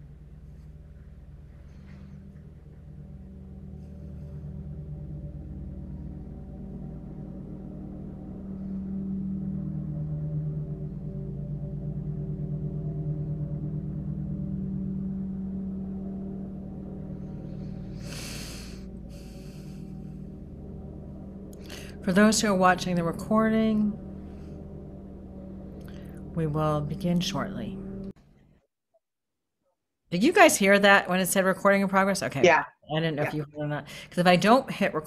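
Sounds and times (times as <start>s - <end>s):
low steady hum of tones: 0.0s - 28.2s, 30.2s - 35.0s.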